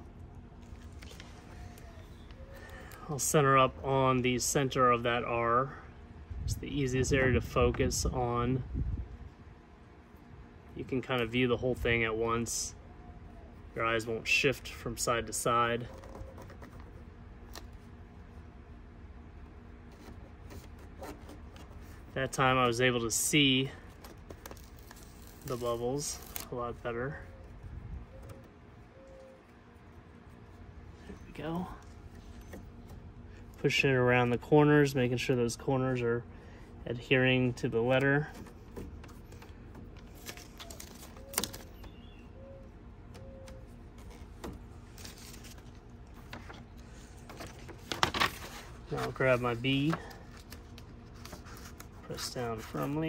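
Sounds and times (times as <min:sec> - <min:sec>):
steady low rumble: 0:00.0 - 0:15.6, 0:21.4 - 0:40.2
low steady hum: 0:00.0 - 0:53.0
vinyl sheet crackling: 0:19.5 - 0:33.5, 0:38.4 - 0:42.0, 0:43.6 - 0:53.0
fingers pressing paper tape: 0:23.9 - 0:26.5.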